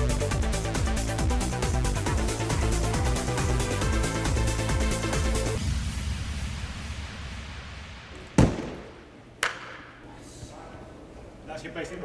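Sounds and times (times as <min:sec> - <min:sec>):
sharp smack: 0:08.2 - 0:09.8.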